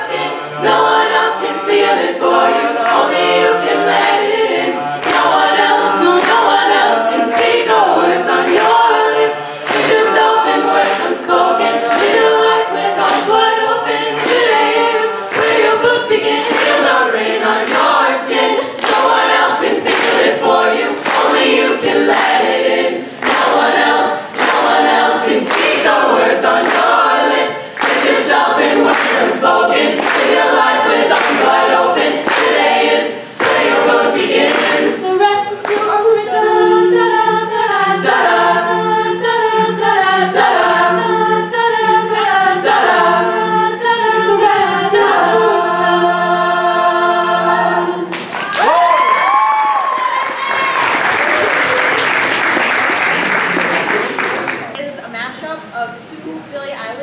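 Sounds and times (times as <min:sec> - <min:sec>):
a cappella group singing in harmony: 0:00.0 - 0:54.6.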